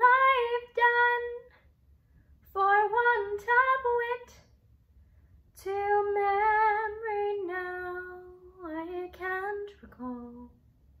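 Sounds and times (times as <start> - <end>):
woman singing unaccompanied: 0.0 - 1.6, 2.5 - 4.4, 5.6 - 10.6.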